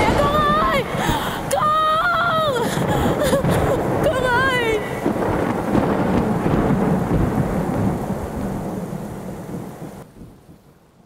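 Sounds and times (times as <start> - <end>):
heavy rain: 0.0 - 11.0
low thunder: 0.0 - 11.0.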